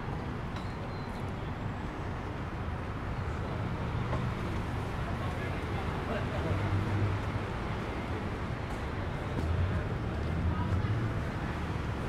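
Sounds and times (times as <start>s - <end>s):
city traffic drone: 0.0s - 12.0s.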